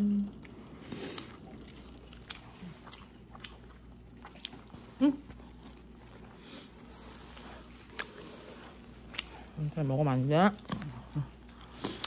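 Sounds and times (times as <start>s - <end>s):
person chewing food: 0.3s - 9.6s, 10.5s - 12.0s.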